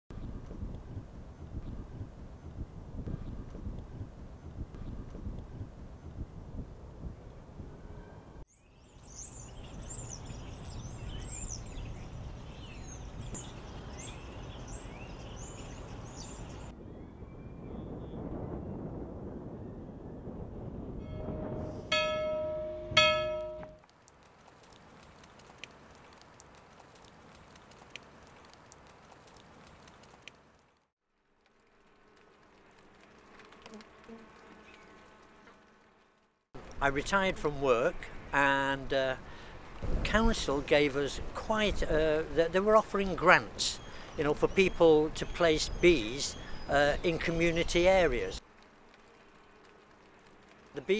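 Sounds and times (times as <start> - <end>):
birds chirping: 8.5 - 18.2, 21.1 - 23.7, 41.5 - 48.4
church bell strikes: 21.0 - 23.8
honeybees buzzing: 31.8 - 36.0, 48.5 - 50.9.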